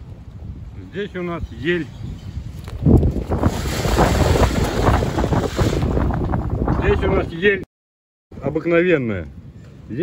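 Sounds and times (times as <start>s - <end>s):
strong wind buffeting microphone: 0.0s - 7.6s.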